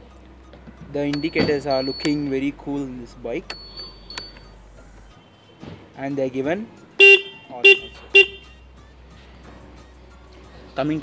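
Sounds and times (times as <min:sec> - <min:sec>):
scooter horn toot: 0:07.0 - 0:08.6.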